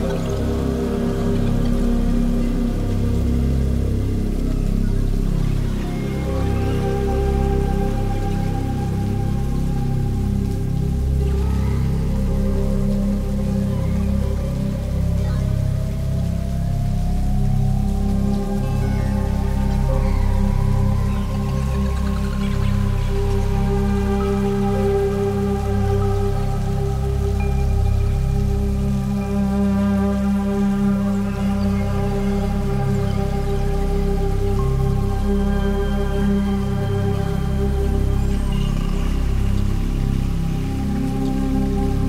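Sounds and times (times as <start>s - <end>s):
low bass line: 0.0s - 42.0s
synthesizer pad: 0.0s - 42.0s.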